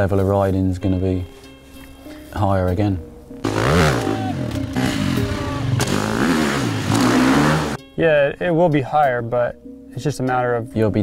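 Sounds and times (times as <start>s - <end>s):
dirt bike engine revving: 3.4s - 7.8s.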